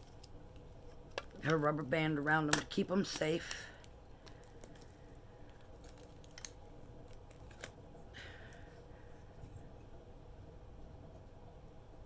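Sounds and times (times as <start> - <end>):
packing paper rustling: 3.0 - 8.2.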